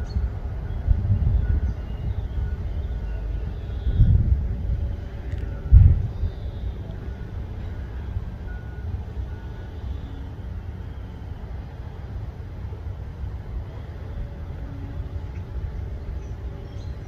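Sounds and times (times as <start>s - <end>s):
distant heavy machinery rumble: 0.0s - 17.0s
faint short beeps: 5.4s - 10.3s.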